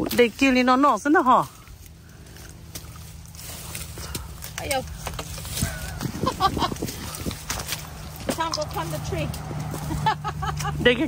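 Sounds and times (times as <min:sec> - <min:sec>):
steady low rumble: 0:00.0 - 0:11.0
people talking: 0:04.6 - 0:05.0, 0:05.6 - 0:07.2, 0:08.2 - 0:09.4, 0:10.0 - 0:11.0
people laughing: 0:05.8 - 0:07.3, 0:09.7 - 0:11.0.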